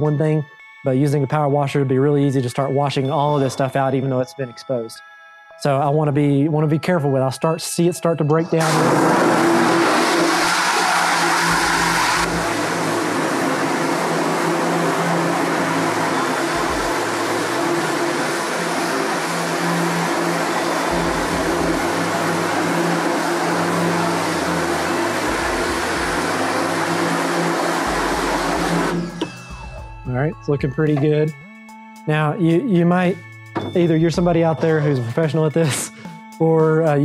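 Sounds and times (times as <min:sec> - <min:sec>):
pressure washer motor hum: 0:08.6 - 0:29.4.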